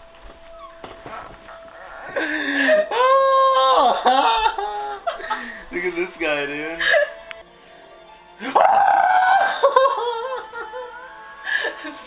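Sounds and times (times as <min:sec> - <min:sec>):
man laughing in falsetto: 0:01.8 - 0:05.6, 0:08.4 - 0:12.0.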